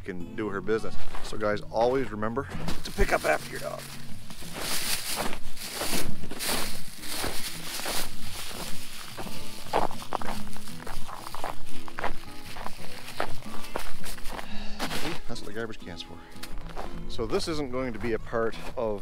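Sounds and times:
background music: 0.0 - 19.0
footsteps in packed snow: 0.8 - 15.6, 16.4 - 19.0
plastic bag crinkling: 2.8 - 14.3.

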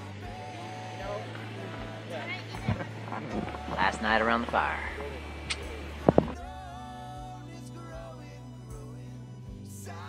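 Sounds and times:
distant people talking: 0.0 - 6.4
steady low hum: 0.0 - 9.6.

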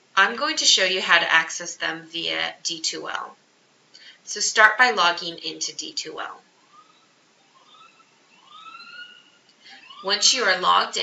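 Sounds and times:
faint siren wailing: 6.2 - 11.0.

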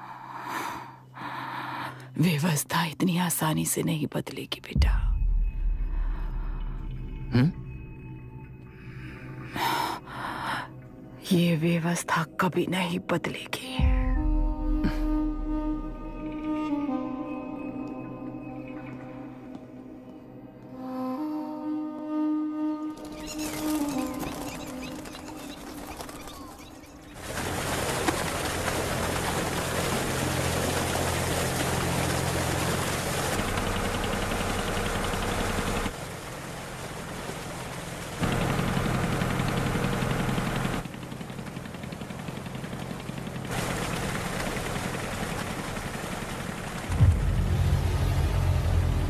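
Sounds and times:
motorboat engine running: 13.7 - 19.6, 22.1 - 49.0
water rushing along hull: 23.0 - 49.0.

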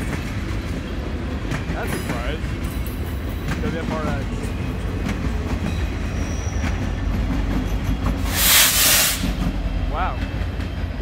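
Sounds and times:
freight train rumbling: 0.0 - 11.0
loud air hiss: 8.2 - 9.4.

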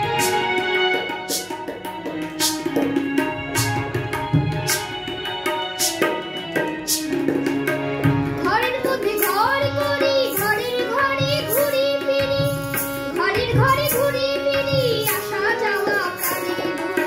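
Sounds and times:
tabla: 0.0 - 17.0
boy singing: 8.1 - 17.0.

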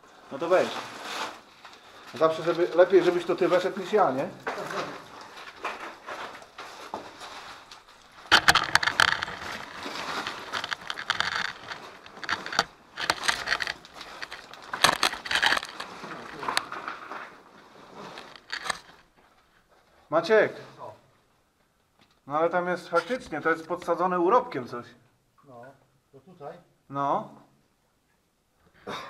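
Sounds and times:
tripod scraping on sand and rock: 8.3 - 15.9, 18.0 - 19.0.

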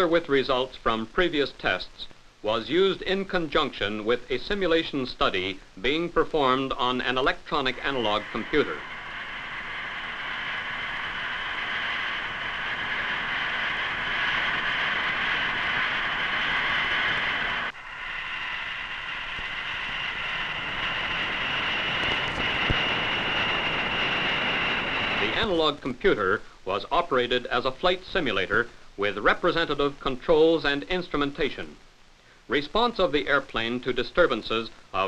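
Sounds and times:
compressed air hissing: 6.8 - 25.7.

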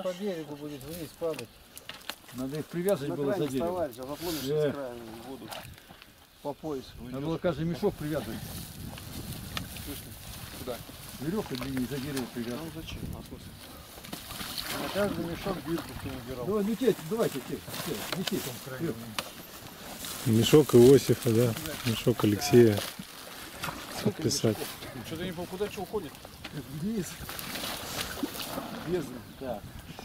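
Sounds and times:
men's voices: 2.3 - 5.7, 14.6 - 19.4, 20.0 - 23.0, 23.7 - 27.4
water running and splashing: 8.0 - 13.5, 14.2 - 29.6
water sloshing and running: 10.6 - 13.0, 14.2 - 18.1, 20.9 - 24.9.

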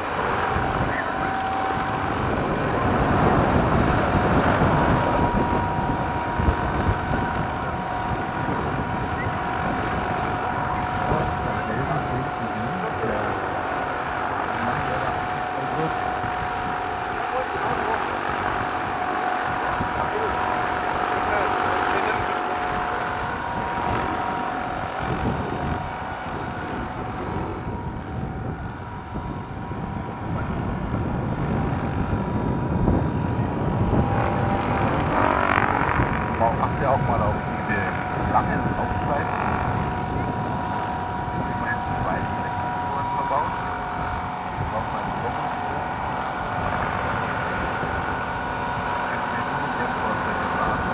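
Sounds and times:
helicopter rotor noise: 0.0 - 50.9
high whine of electric motors: 0.0 - 50.9.

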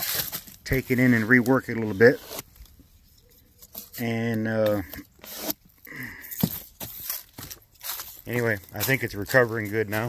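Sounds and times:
man speaking: 0.7 - 2.2, 4.0 - 5.0, 8.2 - 10.0.

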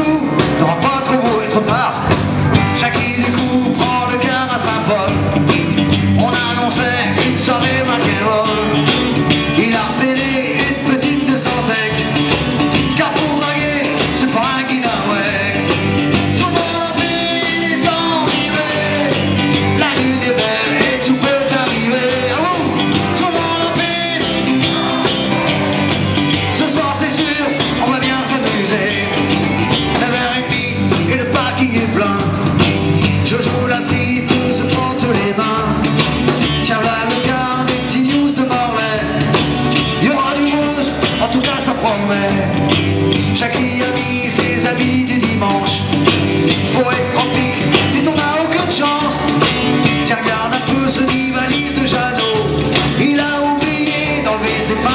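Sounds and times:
live rock band playing: 0.0 - 54.9.

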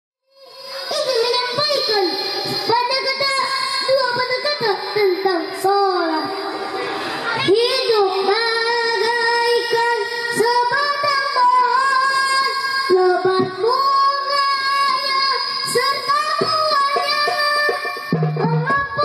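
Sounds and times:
boy singing into a microphone: 0.3 - 19.0.

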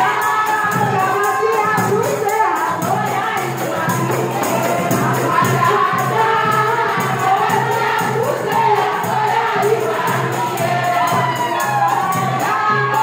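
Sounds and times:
percussion beat: 0.0 - 13.0
women singing in chorus: 0.0 - 13.0.

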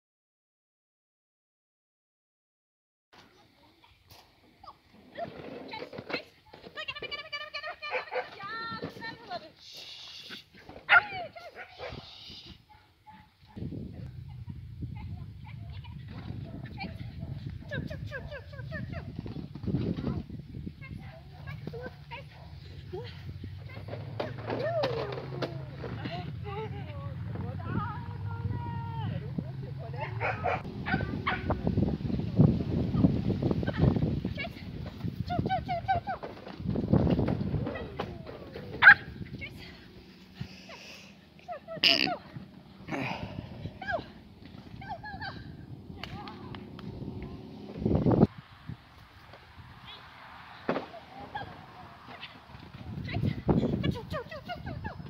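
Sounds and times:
dog barking: 7.9 - 8.3, 10.9 - 12.1, 16.4 - 17.9, 30.0 - 31.6, 38.8 - 39.1
steady low rumble: 13.6 - 23.7, 25.7 - 34.2, 42.3 - 49.0
small dog barking and yipping: 30.0 - 31.6, 38.6 - 39.2
person calling out: 41.7 - 42.3.

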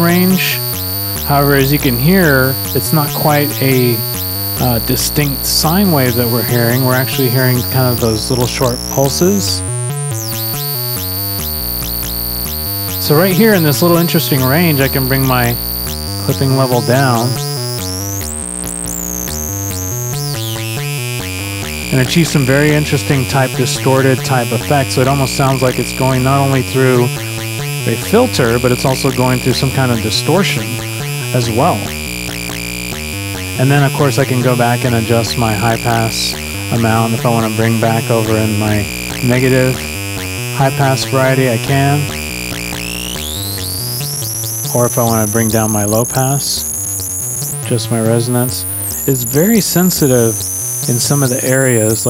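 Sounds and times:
high resonant whistle rising: 0.0 - 9.6, 48.5 - 52.0
resonant synthesizer sequence: 0.0 - 52.0.

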